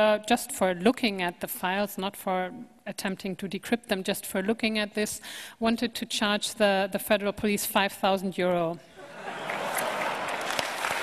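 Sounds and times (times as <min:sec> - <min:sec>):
audience applauding: 0:09.2 - 0:11.0.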